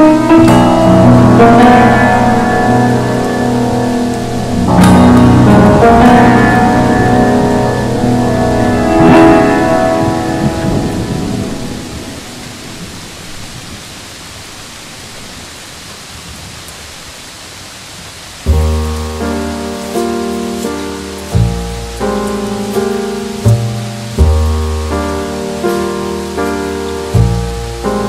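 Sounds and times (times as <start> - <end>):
jazz music: 0.0 - 12.9, 18.5 - 28.0
steady rain: 0.0 - 28.0.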